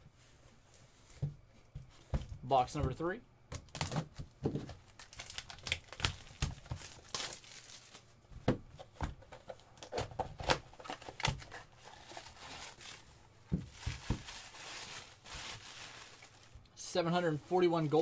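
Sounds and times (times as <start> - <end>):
tissue paper crinkling: 4.9 - 8.1, 11.8 - 16.6
cardboard box knocks: 13.5 - 14.3.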